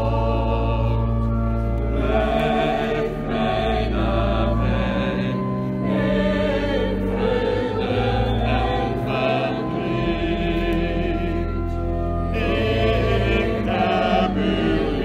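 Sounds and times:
church choir singing: 0:00.0 - 0:15.0.

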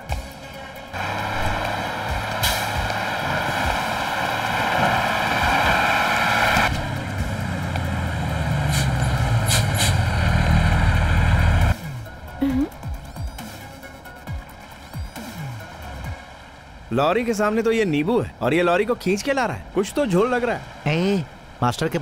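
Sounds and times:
background music: 0:00.0 - 0:20.4
truck engine rumble: 0:00.0 - 0:22.0
loud rushing noise: 0:00.9 - 0:06.8.

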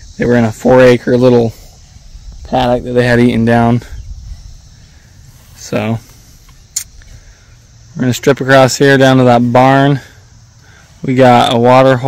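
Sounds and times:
wind buffeting microphone: 0:01.5 - 0:07.8.

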